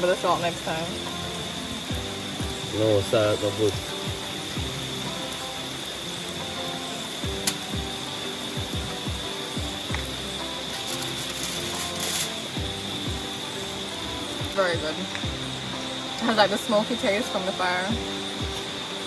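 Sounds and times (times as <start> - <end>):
background music: 0.0 - 19.0
utensil scraping a frying pan: 10.7 - 12.6.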